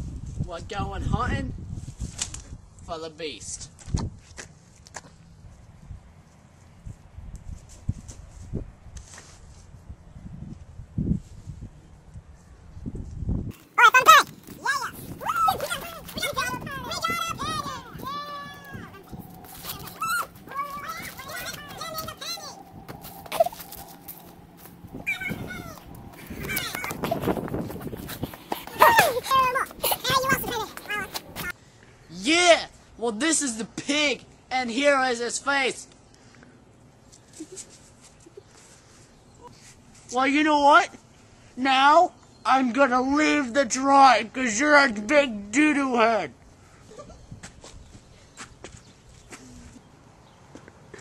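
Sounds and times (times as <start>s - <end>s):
teenagers yelling and squealing: 13.7s - 31.5s
footsteps through dry leaves: 19.0s - 25.2s.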